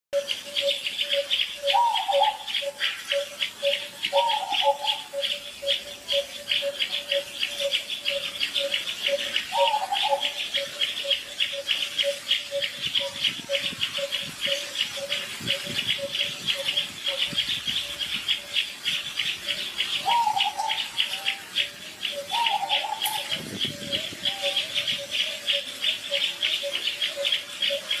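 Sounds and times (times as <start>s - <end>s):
insects chirping: 0.2s - 28.0s
low repeating insect note: 0.2s - 28.0s.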